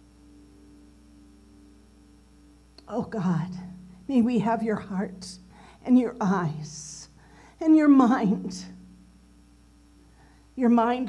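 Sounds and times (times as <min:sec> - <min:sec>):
person praying: 0:02.8 - 0:08.8, 0:10.6 - 0:11.0.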